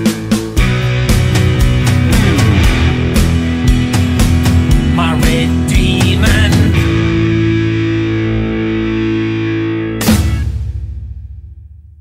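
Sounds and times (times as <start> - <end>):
distorted electric guitar chord: 1.3 - 10.0
drum hits: 1.8 - 5.4.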